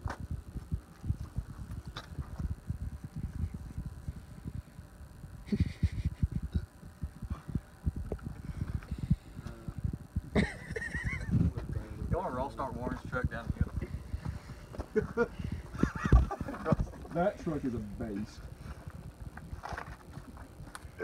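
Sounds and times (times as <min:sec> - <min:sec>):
wind rumbling on microphone: 0:00.0 - 0:21.0.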